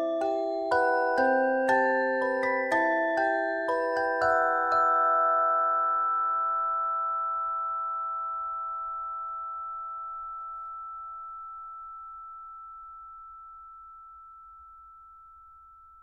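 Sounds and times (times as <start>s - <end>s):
bell-like music chord ringing: 0.0s - 16.0s.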